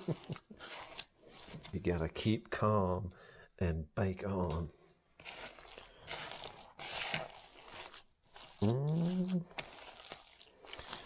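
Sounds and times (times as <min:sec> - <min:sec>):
hands squelching raw meat: 0:00.0 - 0:01.9, 0:04.5 - 0:11.0.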